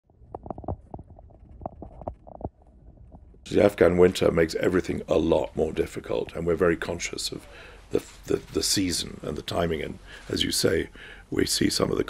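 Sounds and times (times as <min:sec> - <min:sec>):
low wind rumble: 0:00.1 - 0:03.5.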